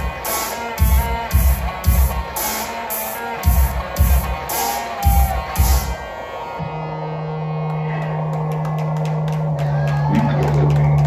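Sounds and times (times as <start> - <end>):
drumbeat: 0.0 - 2.4, 3.4 - 6.0.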